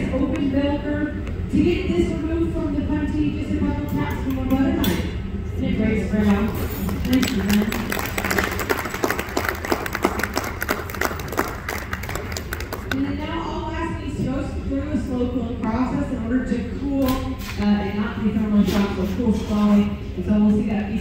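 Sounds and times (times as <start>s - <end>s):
audience applauding: 6.9s - 13.0s.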